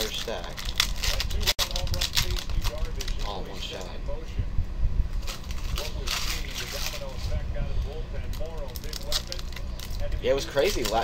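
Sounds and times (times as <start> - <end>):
foil wrappers crinkling and tearing: 0.0 - 3.9, 5.2 - 11.0.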